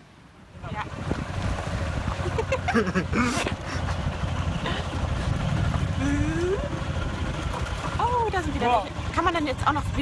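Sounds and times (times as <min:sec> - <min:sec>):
vehicle low rumble: 0:00.0 - 0:10.0
wind buffeting microphone: 0:00.6 - 0:02.6, 0:03.4 - 0:10.0.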